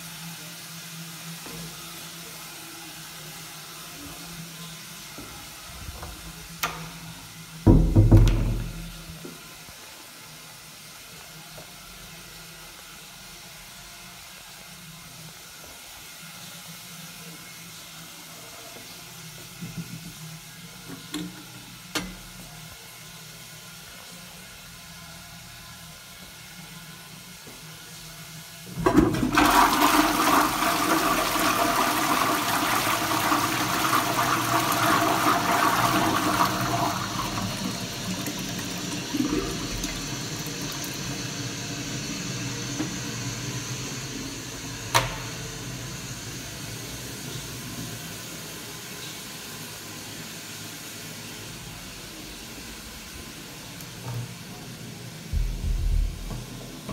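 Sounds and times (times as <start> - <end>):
toilet flushing: 0.0 - 9.7, 25.5 - 56.9.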